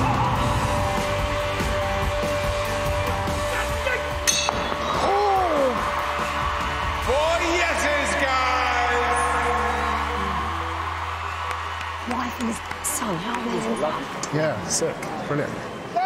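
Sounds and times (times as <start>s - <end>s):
loud backing music: 0.0s - 11.9s
performers shouting: 4.9s - 11.4s.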